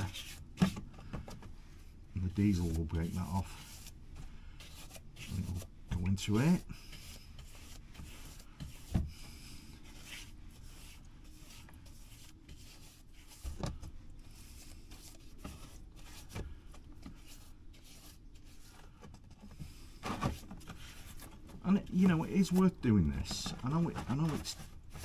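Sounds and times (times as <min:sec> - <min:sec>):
brush scrubbing plastic: 0:01.7 - 0:25.0.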